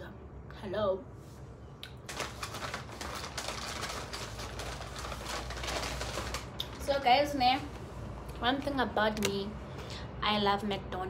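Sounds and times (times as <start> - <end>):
paper bag rustling: 2.0 - 7.1.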